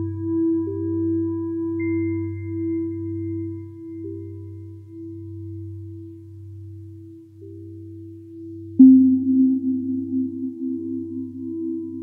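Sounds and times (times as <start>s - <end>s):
ambient synth music: 0.0s - 12.0s.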